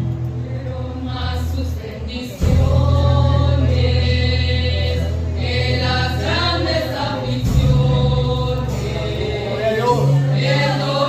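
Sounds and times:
sustained low bass notes: 0.0s - 11.0s
vocal group singing a hymn: 0.0s - 11.0s.

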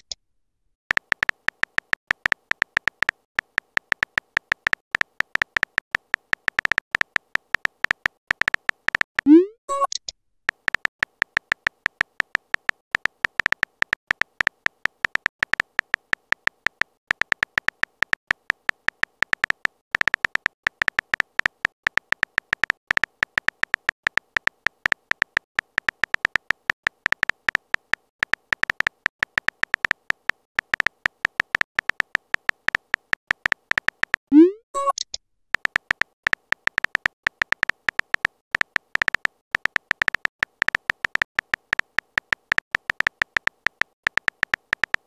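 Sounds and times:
phone keyboard key clicks: 0.9s - 34.2s, 34.8s - 45.0s.

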